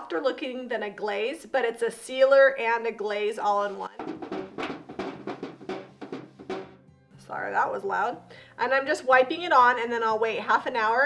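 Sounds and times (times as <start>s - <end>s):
background music: 3.7s - 11.0s.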